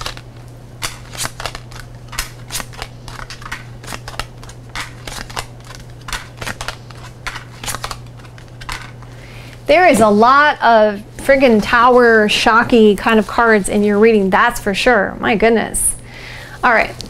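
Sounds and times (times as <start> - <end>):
cards being shuffled: 0.0 - 9.1
low electrical hum: 0.0 - 17.0.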